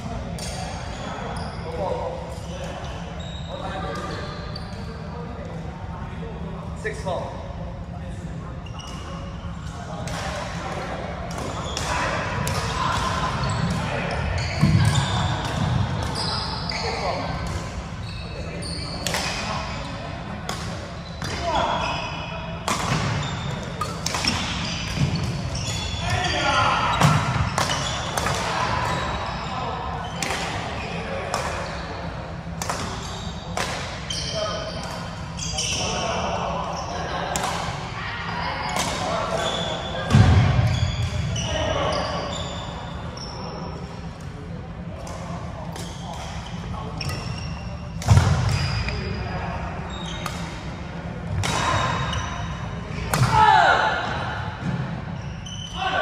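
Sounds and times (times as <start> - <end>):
sneakers squeaking on wooden floor: 0.4 - 1.8, 2.4 - 4.8, 8.6 - 9.1, 11.6 - 19.9, 21.0 - 30.2, 34.1 - 36.1, 38.6 - 43.6, 45.8 - 49.2, 49.9 - 50.5, 51.4 - 52.6, 54.6 - 56.0
rackets striking shuttlecock: 22.6 - 25.8, 51.3 - 52.0, 53.1 - 53.4.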